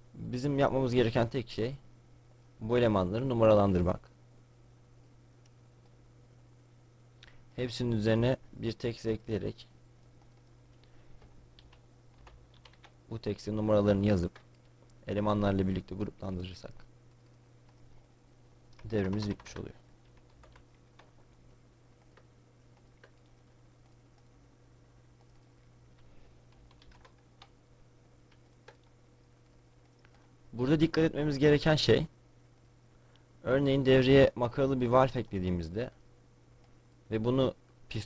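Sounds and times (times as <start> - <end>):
low electrical hum: 0.0 - 38.0
computer keyboard keystrokes: 11.2 - 13.0, 18.7 - 21.4, 22.0 - 24.3, 25.2 - 27.6, 28.3 - 30.2
keyboard keystrokes: 11.2 - 13.0, 26.5 - 27.6, 28.3 - 30.2.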